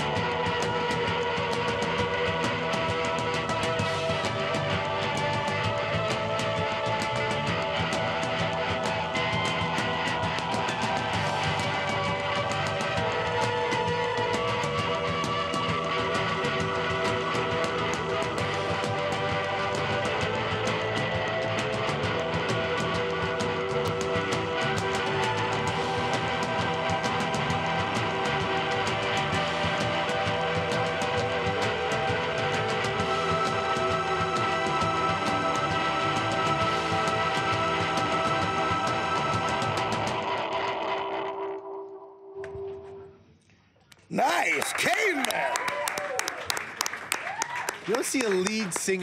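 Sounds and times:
drums: 0.0 - 41.3, 44.0 - 49.0
strummed electric guitar: 0.0 - 43.1.

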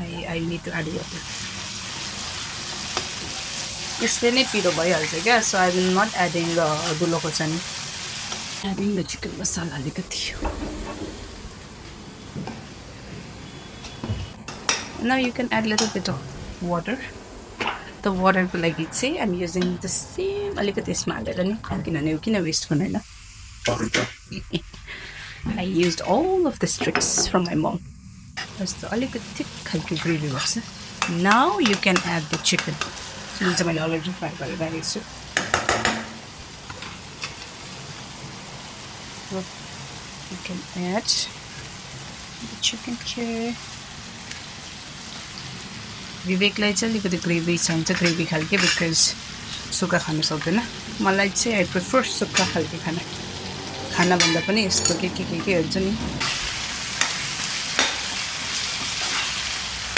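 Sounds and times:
spices frying with soft sizzle: 0.0 - 10.4, 21.4 - 59.9.

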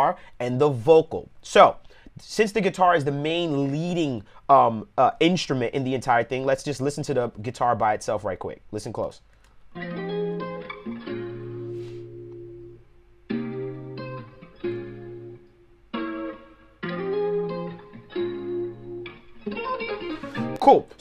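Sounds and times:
guitar strumming chords: 9.8 - 21.0.

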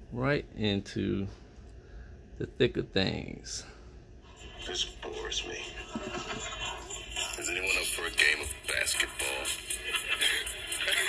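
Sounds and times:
music playing: 4.4 - 11.0.

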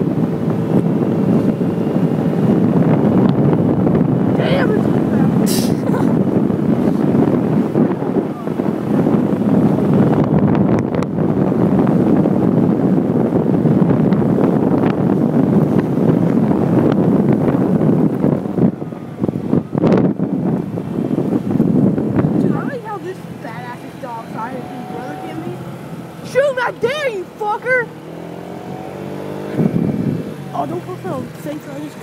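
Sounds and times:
wind buffeting microphone: 0.0 - 32.0.

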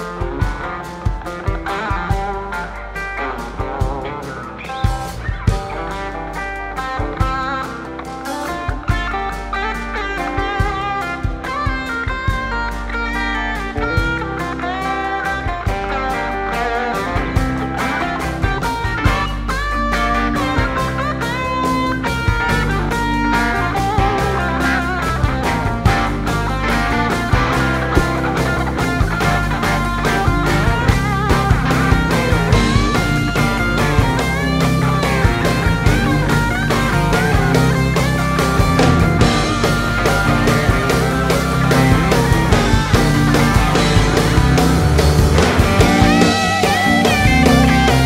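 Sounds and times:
bass: 0.0 - 48.0
drums: 0.0 - 48.0
electric guitar solo: 0.0 - 48.0.

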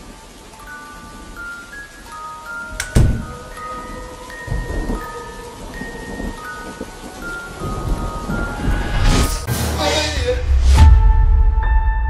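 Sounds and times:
rain and thunder: 0.0 - 11.9
sustained chime-like notes: 0.7 - 9.5.

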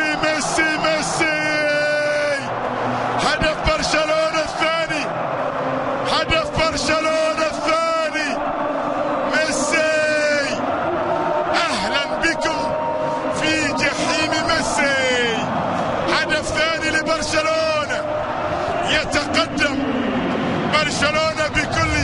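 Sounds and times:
stadium crowd cheering: 0.0 - 22.0.

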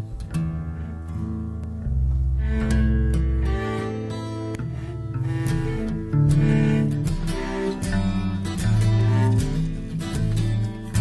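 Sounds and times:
acoustic guitar strumming chords: 0.0 - 11.0
deep bass notes: 0.0 - 11.0.

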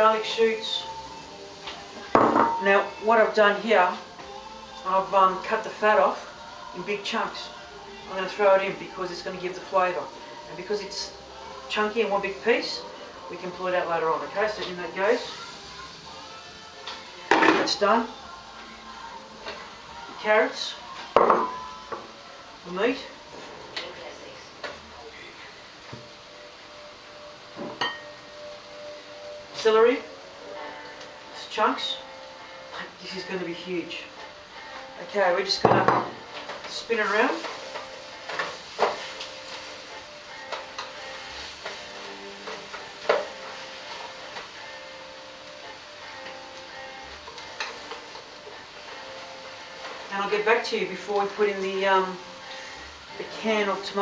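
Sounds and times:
vegetables and beef sizzling in oil: 0.0 - 54.0
plate and pot clinking: 27.6 - 28.1.

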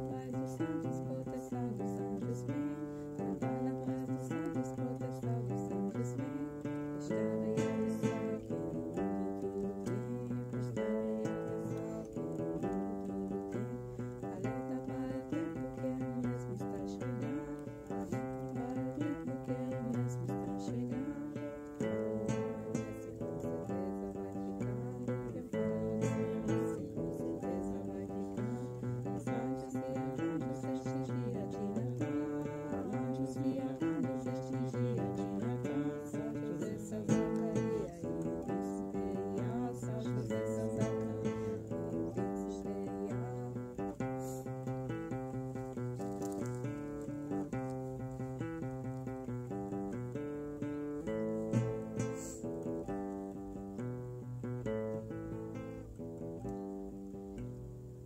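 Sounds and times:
plucked string instrument music: 0.0 - 58.0.

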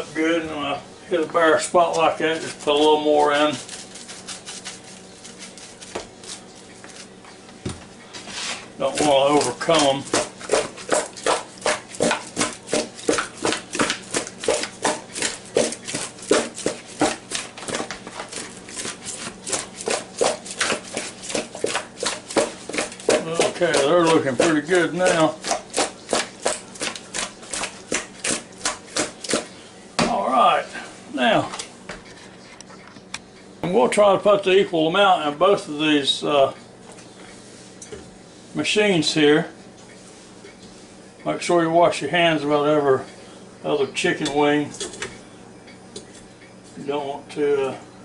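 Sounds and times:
chicken wings shuffled in bowl: 1.8 - 7.2
seasoning shaker rattling: 1.9 - 7.1
chicken wings tossed in a bowl: 8.8 - 29.5.

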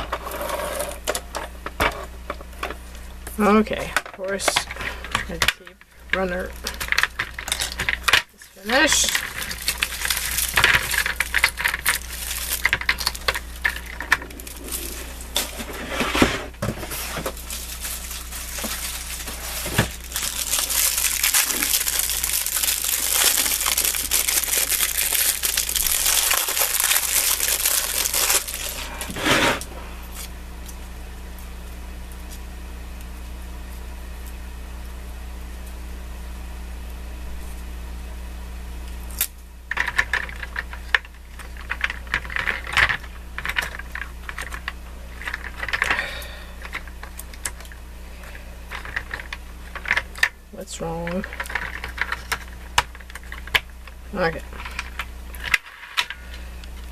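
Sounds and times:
backing tape crumpling and rustling: 4.2 - 31.4, 39.1 - 56.9.

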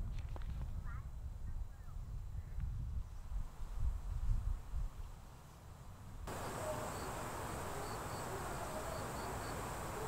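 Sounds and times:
steady hiss: 3.1 - 10.0.

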